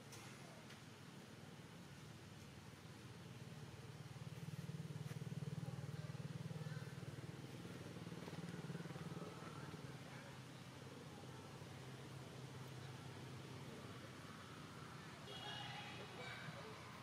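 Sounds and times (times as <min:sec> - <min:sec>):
faint low motor hum: 0:00.0 - 0:17.0.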